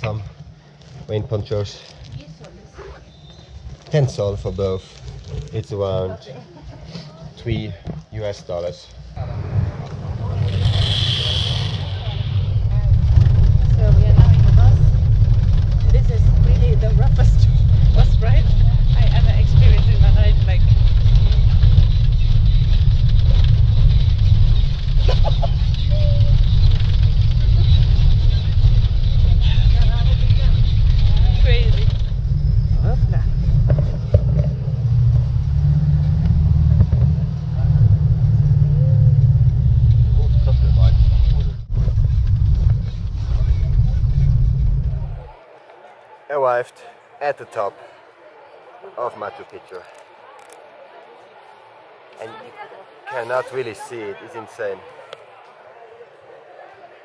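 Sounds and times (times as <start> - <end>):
bus engine and road rumble: 0.0 - 47.0.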